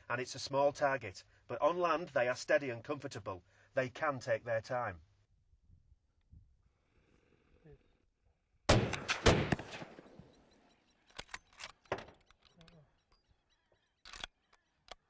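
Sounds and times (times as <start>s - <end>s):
rifle shots: 8.7s - 10.3s
sharp knocks and clicks: 11.1s - 13.2s.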